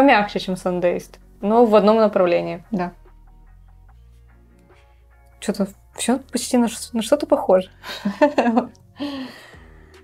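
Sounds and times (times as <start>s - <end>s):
women laughing: 7.9s - 8.7s.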